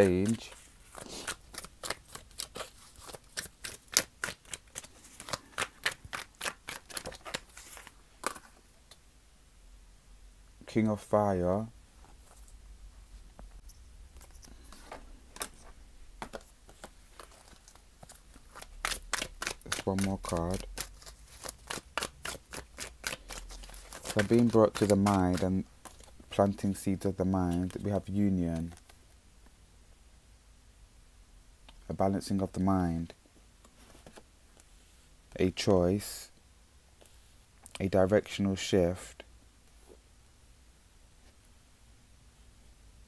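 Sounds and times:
cards being shuffled: 0:00.0 - 0:08.6, 0:14.2 - 0:26.8, 0:27.4 - 0:29.0.

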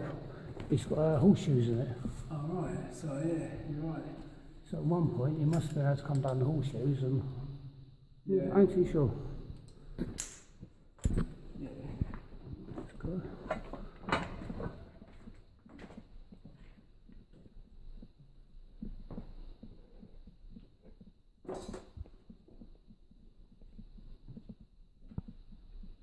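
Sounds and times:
breathing: 0:00.2 - 0:00.6
footsteps on concrete: 0:12.1 - 0:26.0.

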